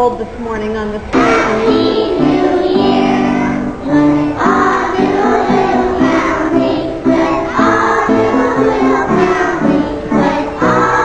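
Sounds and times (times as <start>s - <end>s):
children singing: 1.2s - 11.0s.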